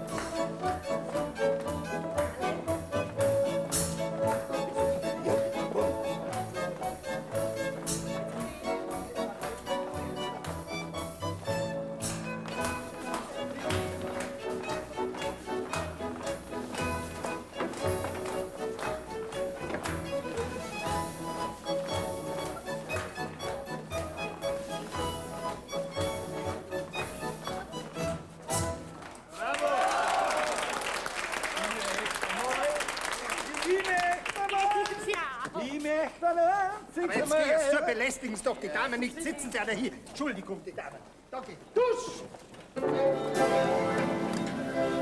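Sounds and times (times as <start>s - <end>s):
dance band with accordion: 0.0s - 29.0s.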